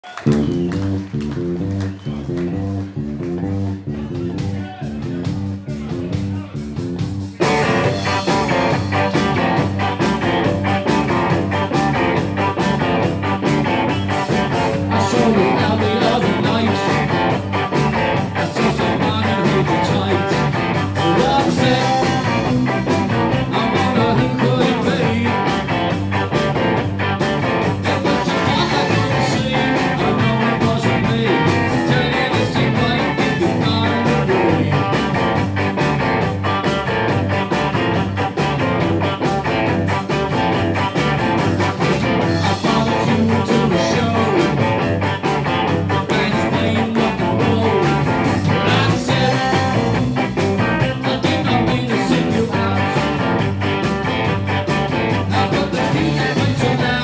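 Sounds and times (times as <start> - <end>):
live rock band playing: 0.0 - 57.0.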